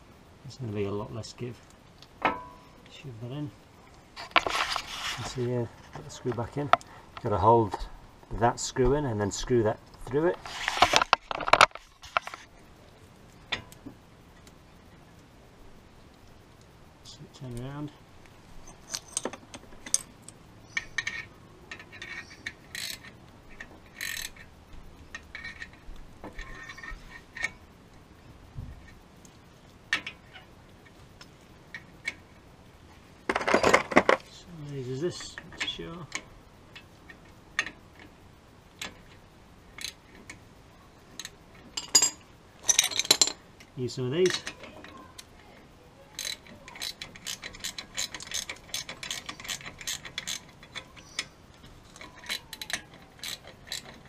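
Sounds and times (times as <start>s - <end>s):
metal hardware clatter: 2.2s - 2.6s, 10.6s - 12.5s, 18.6s - 24.5s, 33.3s - 34.3s, 41.2s - 43.4s, 44.0s - 45.3s, 46.2s - 54.0s
metallic clicks of hand tools: 46.2s - 54.0s.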